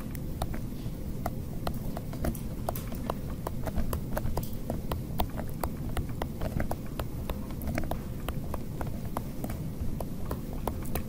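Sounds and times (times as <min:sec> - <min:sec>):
stylus tapping on tablet screen: 0:01.2 - 0:11.0.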